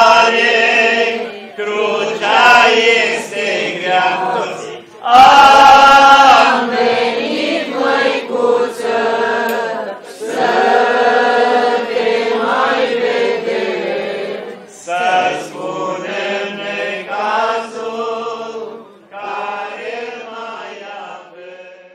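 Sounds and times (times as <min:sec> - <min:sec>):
voices singing liturgical chant: 0:00.0 - 0:21.9.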